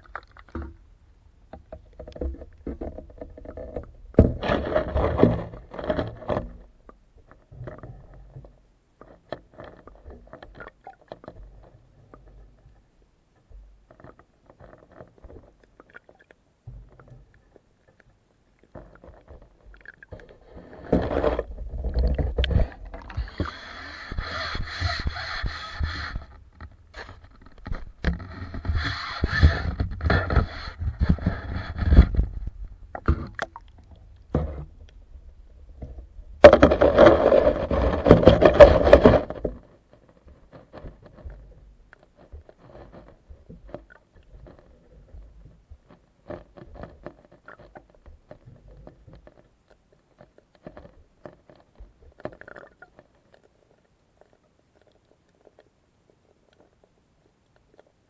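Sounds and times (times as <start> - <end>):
fish feeding on gravel underwater: 0.0 - 0.9, 1.9 - 58.0.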